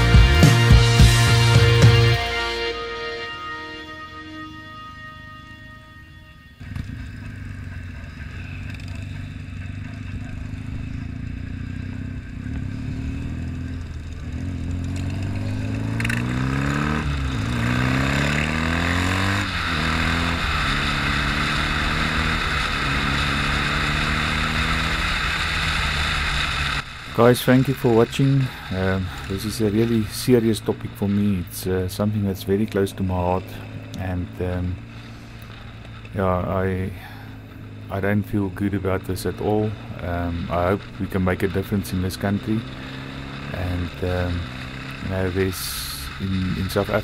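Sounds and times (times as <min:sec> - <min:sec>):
background music: 0:00.0 - 0:06.8
motorcycle engine accelerating: 0:00.0 - 0:47.0.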